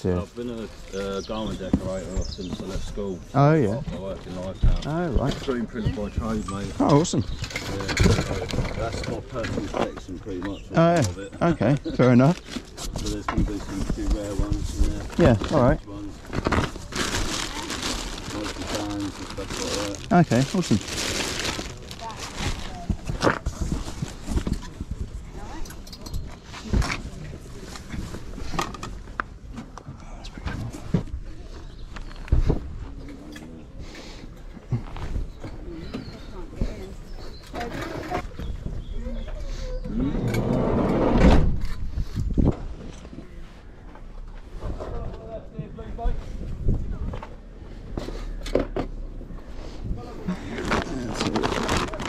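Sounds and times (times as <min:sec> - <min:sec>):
rustling fabric and cardboard: 0:11.4 - 0:25.5, 0:49.4 - 0:52.0.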